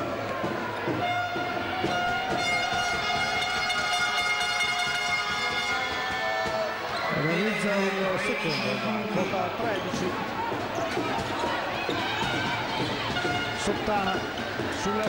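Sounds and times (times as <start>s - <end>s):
arena crowd noise: 0.0s - 15.0s
long steady horn note: 1.0s - 6.0s.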